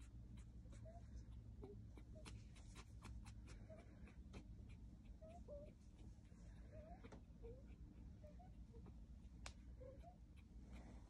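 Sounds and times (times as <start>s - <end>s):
puppy squeaking: 0.0s - 6.1s, 6.7s - 9.0s, 9.8s - 10.6s.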